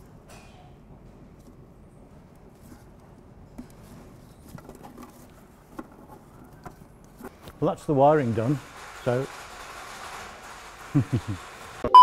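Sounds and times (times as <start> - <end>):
low steady workshop hum: 0.0 - 12.0.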